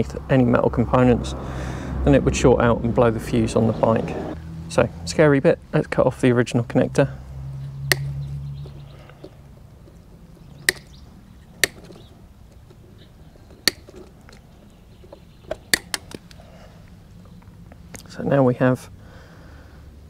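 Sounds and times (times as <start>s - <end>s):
side cutters snipping wires: 7.7s - 8.8s, 10.6s - 12.8s, 13.6s - 14.5s, 15.5s - 16.4s.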